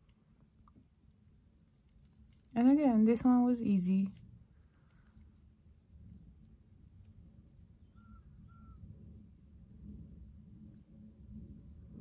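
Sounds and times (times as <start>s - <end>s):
low room hum: 0.0s - 12.0s
faint short chirps: 7.8s - 8.9s.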